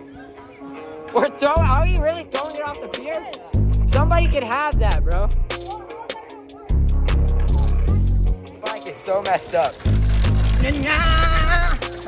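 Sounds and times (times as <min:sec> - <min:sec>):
heavy bass line: 0:03.6 - 0:05.5.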